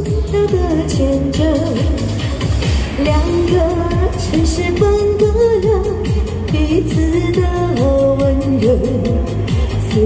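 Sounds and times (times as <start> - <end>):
backing track with steady beat: 0.0 - 10.0
woman singing pop ballad amplified: 0.0 - 10.0.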